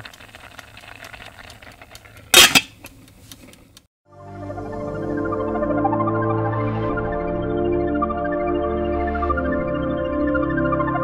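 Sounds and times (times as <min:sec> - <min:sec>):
pot lid clattering on metal pot: 0:02.4 - 0:02.8.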